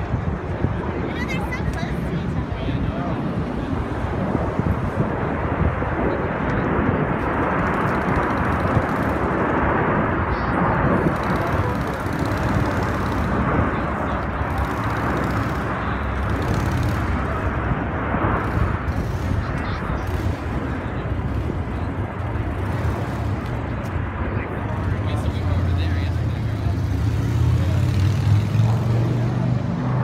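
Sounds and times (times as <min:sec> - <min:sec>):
jets flying low overhead: 0:00.0 - 0:30.0.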